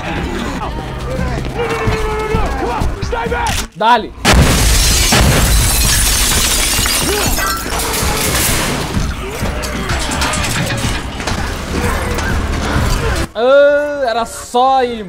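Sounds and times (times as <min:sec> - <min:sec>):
dramatic background music: 0:07.8 - 0:13.4.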